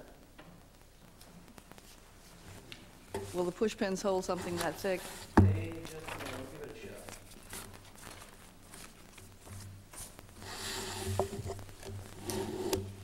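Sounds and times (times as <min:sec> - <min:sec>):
low electrical hum: 0:00.0 - 0:13.0
paper rustling: 0:04.3 - 0:13.0.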